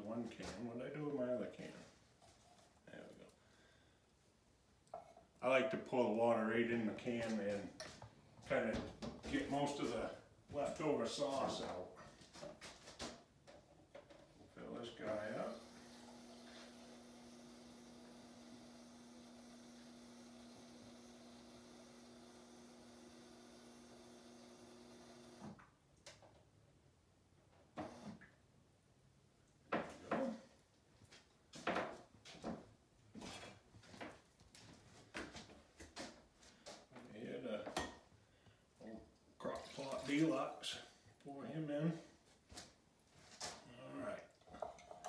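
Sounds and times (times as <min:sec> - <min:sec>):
refrigerator water dispenser humming: 0:15.5 - 0:25.4
knocks and clinks of kitchen items: 0:37.6 - 0:38.1
water filling a metal can: 0:39.4 - 0:40.8, 0:44.4 - 0:45.0.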